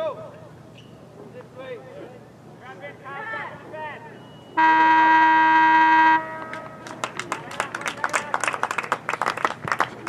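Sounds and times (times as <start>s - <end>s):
scoreboard horn blast: 4.6s - 6.8s.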